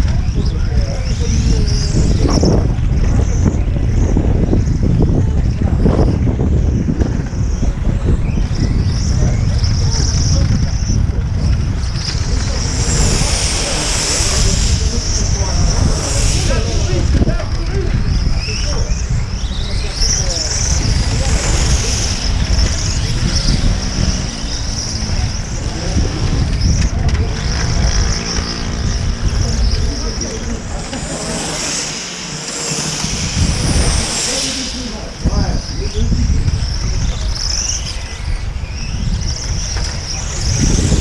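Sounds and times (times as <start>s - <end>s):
gusty low rumble: 0.0s - 41.0s
rc car engines buzzing: 0.0s - 41.0s.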